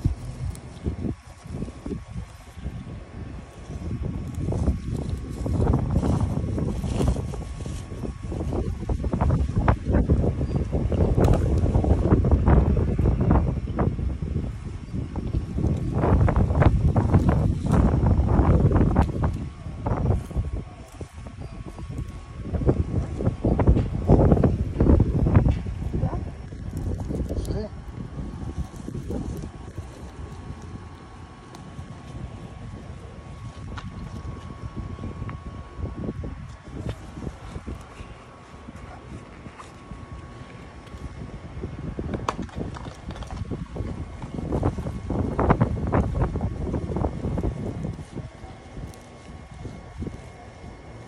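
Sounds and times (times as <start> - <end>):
leaves and stems crackling: 0.0 - 51.0
wind buffeting microphone: 0.0 - 51.0.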